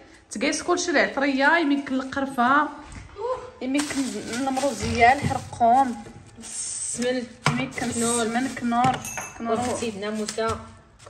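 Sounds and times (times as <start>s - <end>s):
plastic bags rustling: 3.7s - 11.0s.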